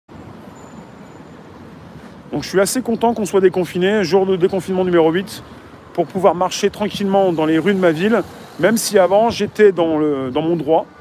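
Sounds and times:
street traffic hum: 0.1s - 11.0s.

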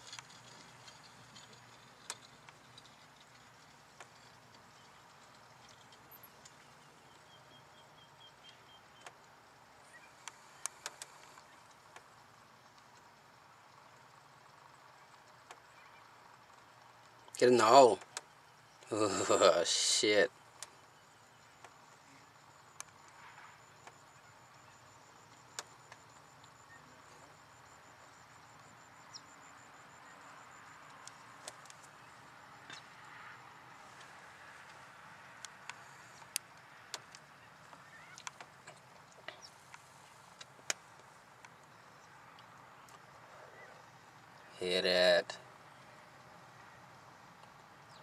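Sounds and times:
distant bird calls: 0.0s - 48.0s.

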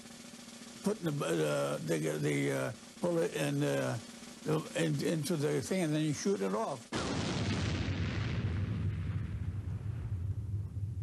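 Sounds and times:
explosion boom: 6.9s - 11.0s
deep rumble: 7.5s - 11.0s.

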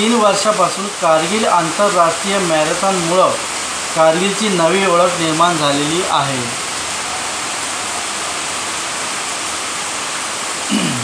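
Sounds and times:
steady background hiss: 0.0s - 11.0s
short low voice: 10.7s - 11.0s.

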